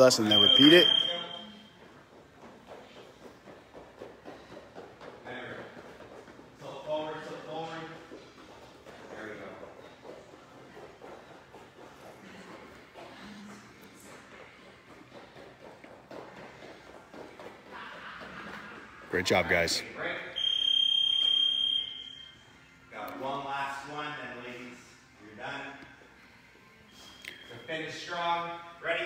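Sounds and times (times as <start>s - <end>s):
shuffling footsteps: 0.0s - 19.8s.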